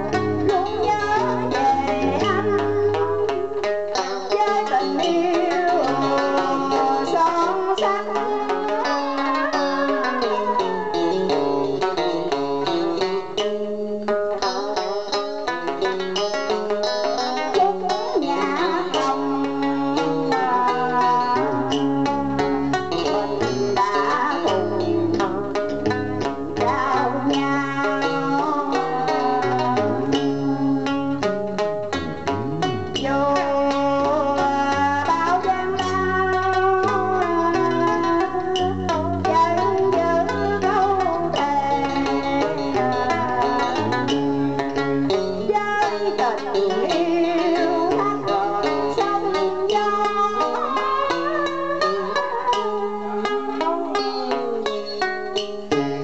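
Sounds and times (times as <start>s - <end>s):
woman singing into microphone: 0.0s - 15.2s, 16.2s - 54.8s
plucked strings: 0.0s - 56.0s
deep bass notes: 30.9s - 33.4s, 34.0s - 44.6s.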